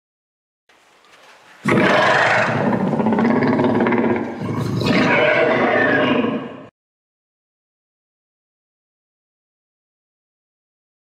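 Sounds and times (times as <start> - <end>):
dinosaur roar: 1.6 - 6.7.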